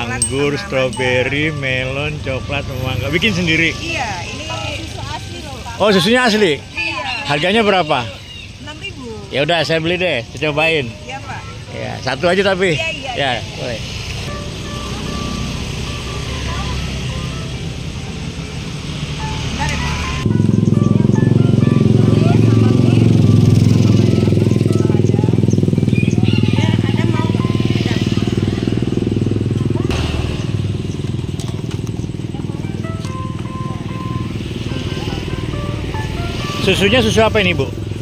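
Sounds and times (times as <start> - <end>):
music: 0.0 - 8.1, 14.3 - 28.9, 32.0 - 38.0
voices: 0.0 - 38.0.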